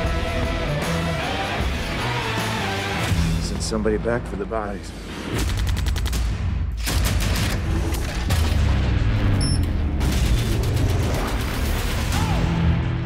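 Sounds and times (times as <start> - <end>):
dramatic film score: 0.0 - 13.0.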